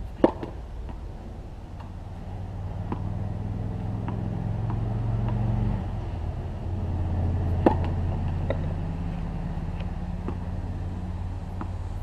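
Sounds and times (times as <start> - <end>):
low motor hum: 0.0 - 12.0
tennis ball bouncing on hard court: 0.2 - 1.1, 1.8 - 6.0, 6.8 - 11.9.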